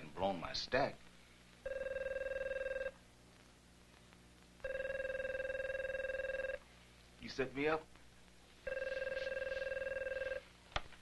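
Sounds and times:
telephone ringing with trilling tone: 1.6s - 3.0s, 4.6s - 6.6s, 8.6s - 10.5s.

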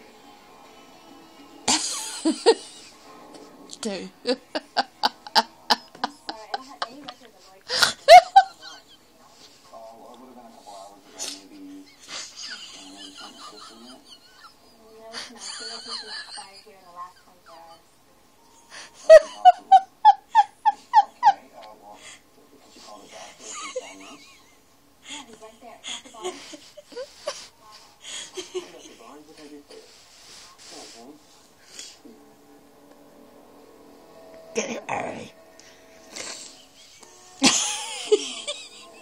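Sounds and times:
faint background music: 0.0s - 39.0s.

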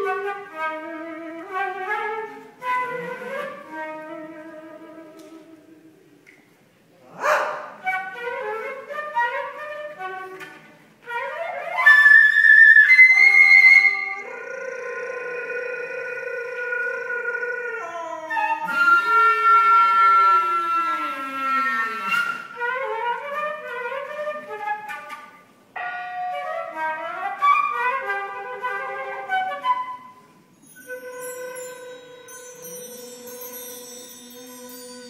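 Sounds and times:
flute and saxophone chamber music: 0.0s - 6.4s, 7.8s - 35.0s.

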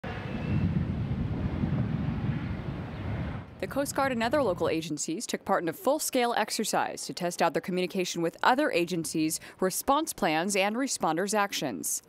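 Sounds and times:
wind buffeting microphone: 0.0s - 5.0s.

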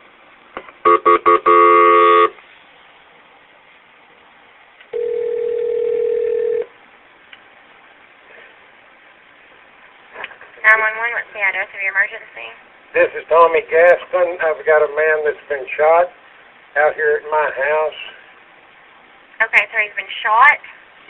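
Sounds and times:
telephone ringing tone: 0.9s - 2.4s, 4.9s - 6.7s.

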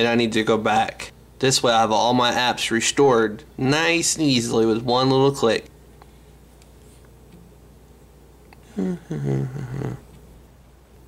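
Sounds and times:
man's low laugh: 8.7s - 10.0s.

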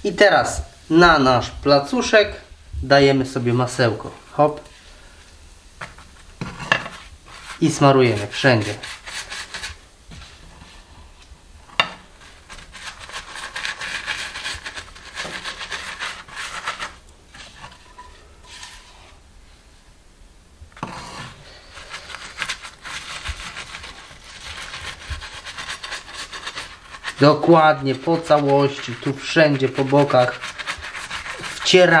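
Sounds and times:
pastry brush rubbing: 5.8s - 11.3s, 12.0s - 19.2s, 20.8s - 32.0s.

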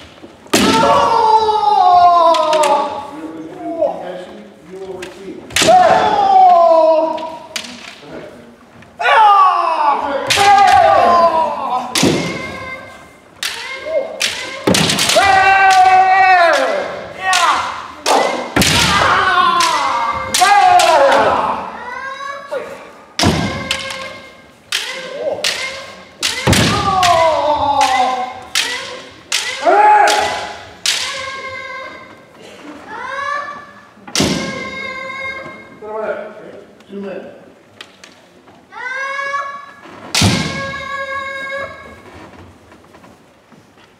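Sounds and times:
bamboo swords striking armour: 0.5s - 1.2s, 5.5s - 6.2s, 13.4s - 21.4s, 24.7s - 31.2s
person shouting kiai: 0.6s - 3.2s, 5.5s - 7.8s, 9.0s - 21.9s, 23.3s - 31.8s.

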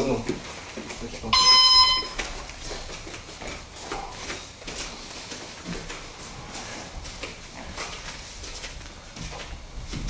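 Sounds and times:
high-pitched timer buzzer: 1.4s - 2.2s.

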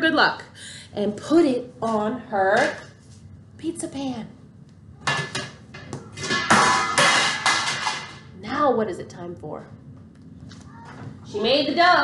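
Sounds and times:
metal pizza pan clanging: 5.1s - 8.2s.

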